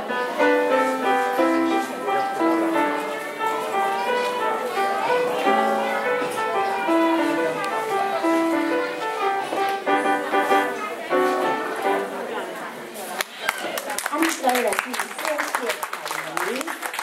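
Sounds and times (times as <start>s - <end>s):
solo piano piece: 0.0s - 12.4s.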